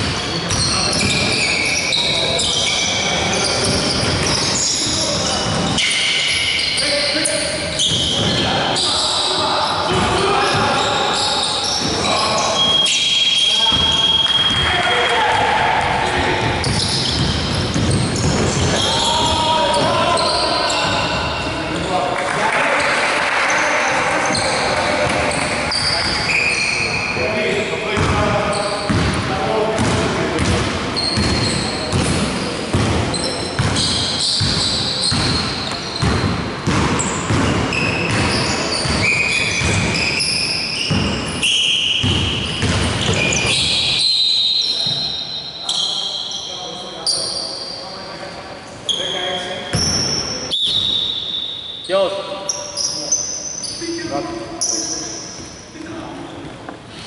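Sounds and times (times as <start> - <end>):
sneakers squeaking: 0.0 - 57.0
basketball bouncing on wooden floor: 15.8 - 19.8, 28.0 - 28.2, 28.9 - 29.2, 29.8 - 33.0, 33.6 - 40.1, 42.0 - 43.5.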